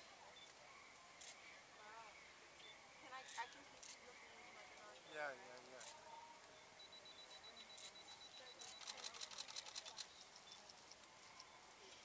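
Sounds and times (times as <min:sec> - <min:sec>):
camera shutter rapid burst: 0:08.6 - 0:10.1.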